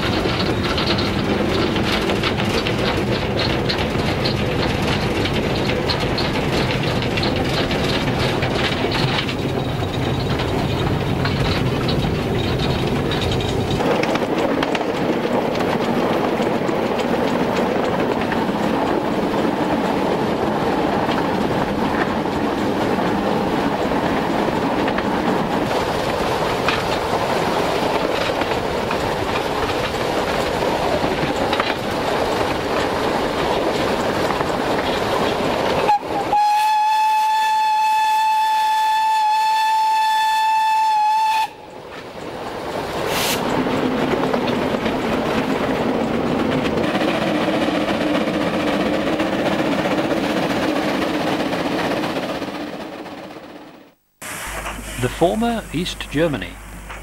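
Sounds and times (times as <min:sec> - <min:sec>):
steam locomotive rumble and rattle: 0:00.0 - 0:57.0
steam whistle blast: 0:35.9 - 0:41.6.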